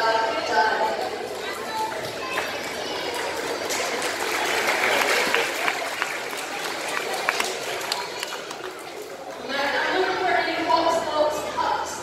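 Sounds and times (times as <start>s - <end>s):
echoing audience chatter: 0.0s - 12.0s.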